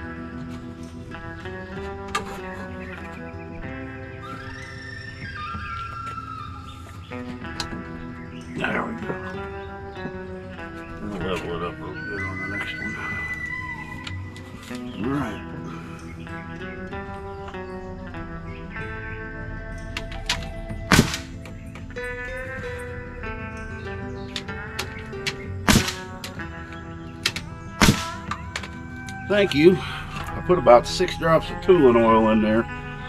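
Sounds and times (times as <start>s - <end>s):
background music: 0.0s - 33.0s
nail gun firing: 20.9s - 21.3s, 25.6s - 26.0s, 27.2s - 28.2s.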